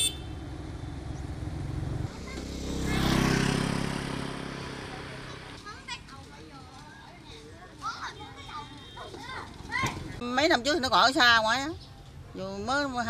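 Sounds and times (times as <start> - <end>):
faint children's voices: 2.1 - 3.8, 4.7 - 10.2.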